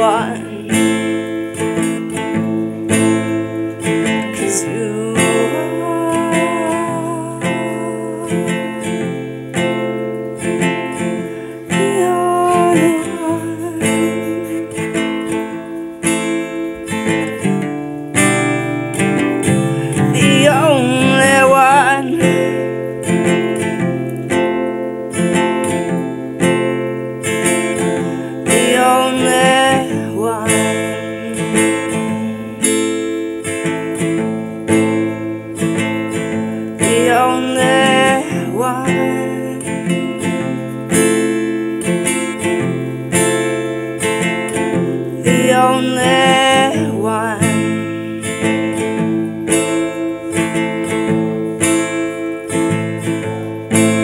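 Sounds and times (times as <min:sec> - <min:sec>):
woman singing: 0:00.0 - 0:23.8, 0:27.4 - 0:42.2, 0:43.2 - 0:48.8
acoustic guitar strumming: 0:00.0 - 0:54.0.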